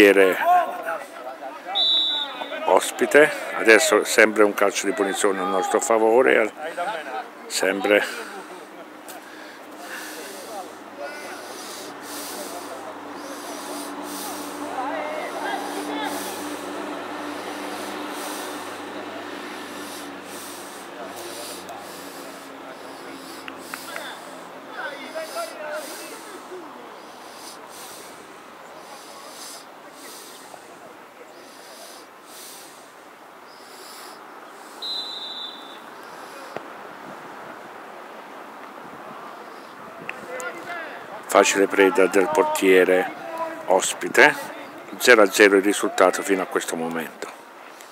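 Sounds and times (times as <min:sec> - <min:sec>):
distant players shouting: 0:00.0 - 0:32.8, 0:33.5 - 0:36.8, 0:39.3 - 0:46.5
referee's whistle blast: 0:01.7 - 0:02.7, 0:34.8 - 0:35.8.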